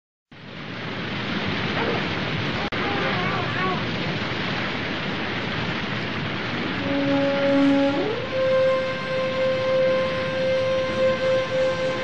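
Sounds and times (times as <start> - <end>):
rushing water noise: 0.3 - 12.0.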